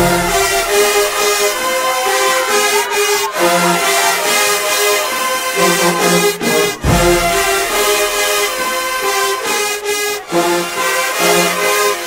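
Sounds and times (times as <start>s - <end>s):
marching band playing chords: 0.0s - 12.0s.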